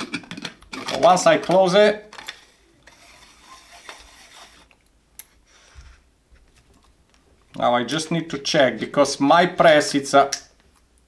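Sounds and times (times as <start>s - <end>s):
metal threads scraping: 2.2s - 4.8s.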